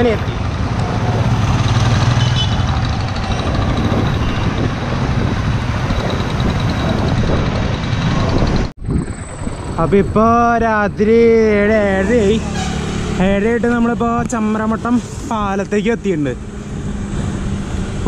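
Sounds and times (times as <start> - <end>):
road traffic: 0.0 - 18.0
wind on microphone: 3.2 - 10.4.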